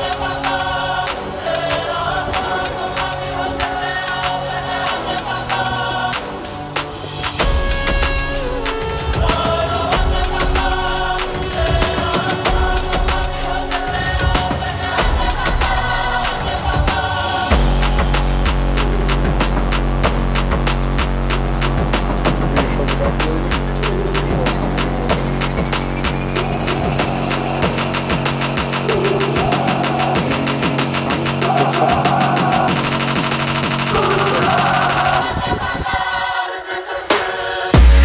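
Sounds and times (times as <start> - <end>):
electronic music with fast drums: 0.0 - 35.9, 37.1 - 38.0
rising sweep: 21.4 - 38.0.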